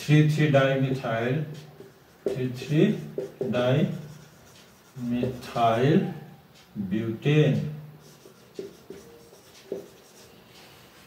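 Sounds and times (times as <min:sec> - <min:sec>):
marker scratching on whiteboard: 0:00.8 - 0:06.2, 0:08.0 - 0:11.0.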